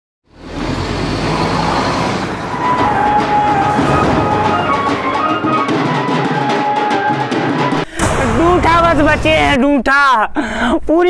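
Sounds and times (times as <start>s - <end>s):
road traffic: 0.2s - 6.9s
vehicle passing: 0.3s - 6.4s.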